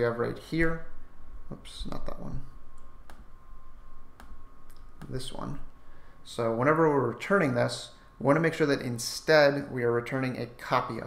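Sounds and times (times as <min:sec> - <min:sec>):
computer mouse clicking: 0:04.2 - 0:05.2.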